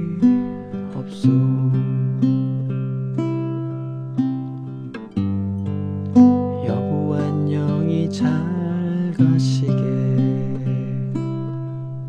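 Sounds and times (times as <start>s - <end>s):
nylon-string guitar chords: 0.0s - 12.0s.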